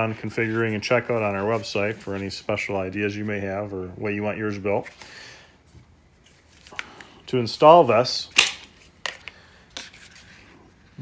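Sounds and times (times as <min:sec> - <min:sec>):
pistol and holster clicking: 0:08.3 - 0:09.4.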